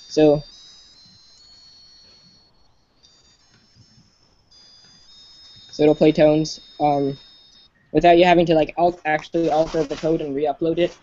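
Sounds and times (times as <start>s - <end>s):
phone buzzer playing high notes: 0.0s - 7.8s.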